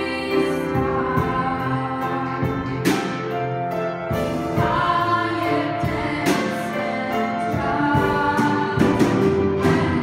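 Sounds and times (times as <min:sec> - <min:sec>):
choir singing held notes: 0:00.0 - 0:03.0, 0:04.3 - 0:10.0.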